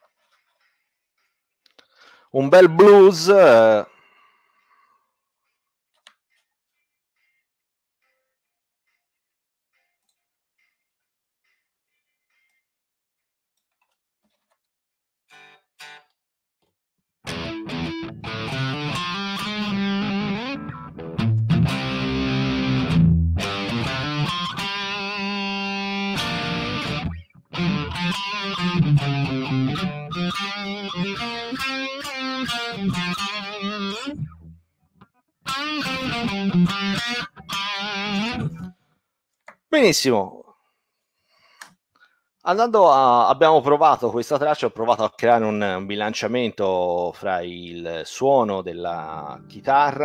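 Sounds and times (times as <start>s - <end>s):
blues backing track: 17.3s - 34.6s, 35.4s - 38.8s
overdriven electric guitar: 17.3s - 38.8s.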